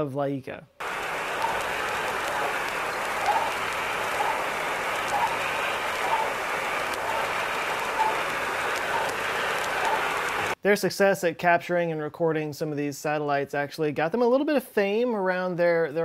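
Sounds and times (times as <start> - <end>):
faint radio pulses: 0.8 - 10.6
radio static hiss: 0.8 - 10.6.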